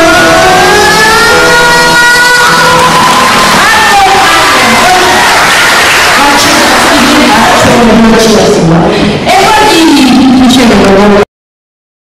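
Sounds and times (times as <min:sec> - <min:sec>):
song accompaniment: 0:00.0 - 0:08.7.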